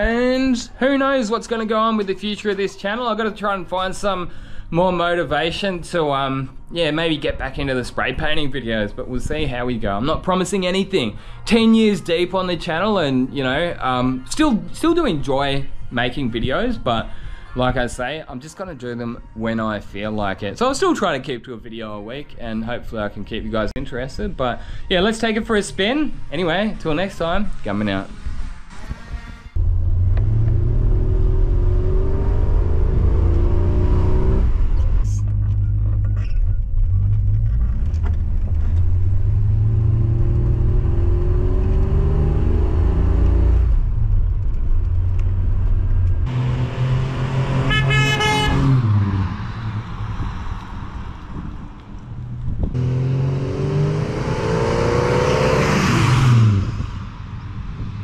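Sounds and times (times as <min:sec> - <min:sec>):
car engine accelerating: 0:29.6 - 0:58.0.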